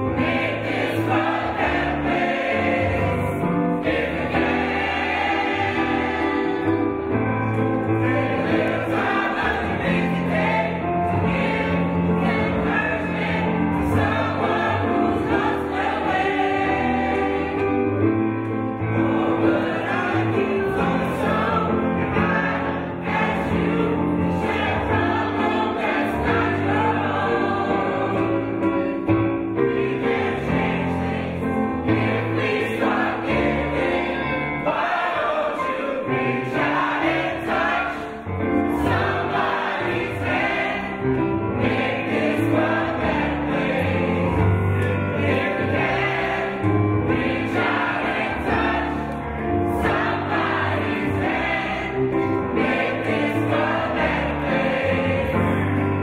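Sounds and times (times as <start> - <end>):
choir singing: 0.0 - 56.0.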